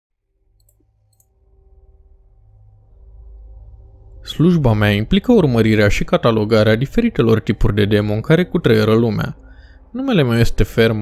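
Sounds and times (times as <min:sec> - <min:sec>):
low steady drone: 0:00.2 - 0:11.0.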